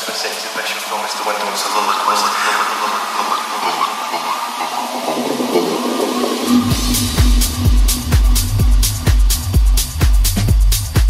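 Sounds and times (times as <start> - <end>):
techno music whooshing wash: 0.0 - 11.0.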